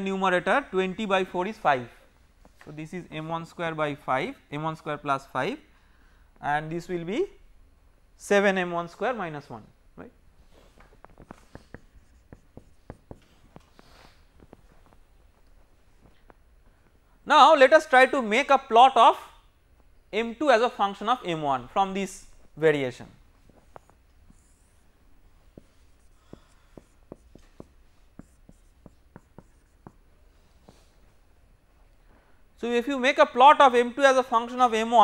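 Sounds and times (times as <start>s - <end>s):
marker pen squeaking on whiteboard: 10.8s - 15.0s, 25.5s - 30.0s.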